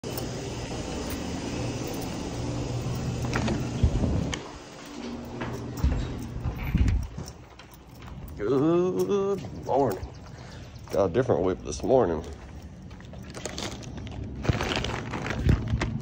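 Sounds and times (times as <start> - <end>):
steady low hum: 0.0 - 14.5.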